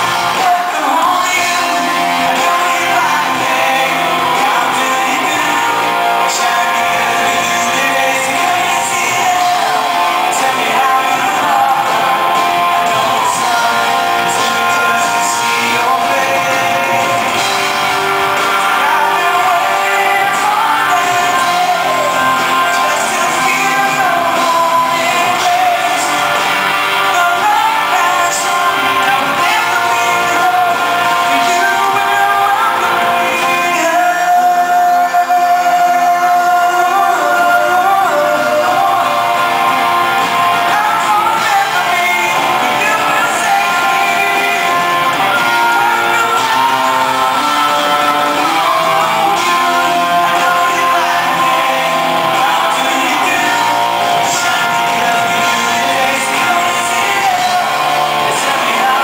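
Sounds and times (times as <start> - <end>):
backing band: 0.0 - 59.0
crowd voices: 0.0 - 59.0
man singing: 0.0 - 59.0
strummed acoustic guitar: 0.0 - 59.0.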